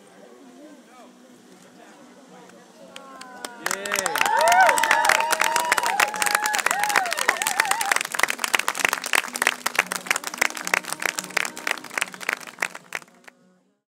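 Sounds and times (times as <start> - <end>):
crowd applauding: 2.9 - 13.3
people cheering: 2.9 - 13.3.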